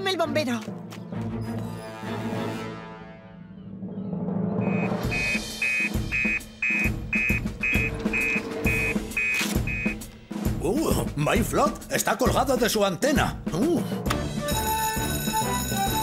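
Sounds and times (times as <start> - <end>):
dramatic cartoon music: 0.1 - 16.0
fire station alarm beeping: 4.6 - 10.0.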